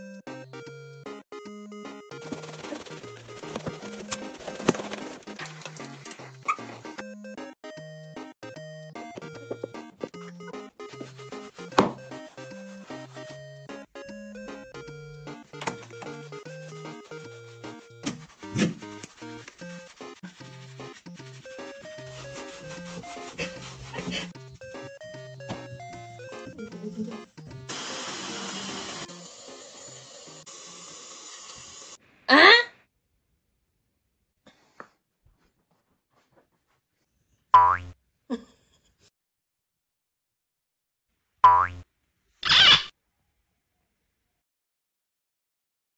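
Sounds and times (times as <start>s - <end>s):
background music: 0.0s - 30.7s
brush scrubbing wet fur: 2.2s - 6.8s, 16.2s - 24.9s
cartoon boing sound effect: 37.6s - 37.9s, 41.4s - 41.8s.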